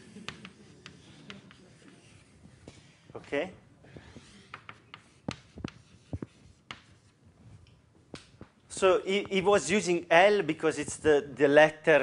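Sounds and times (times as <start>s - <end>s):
chalk tapping and scratching: 0.0s - 3.3s, 3.9s - 7.2s
man speaking: 3.2s - 3.6s, 8.7s - 12.0s.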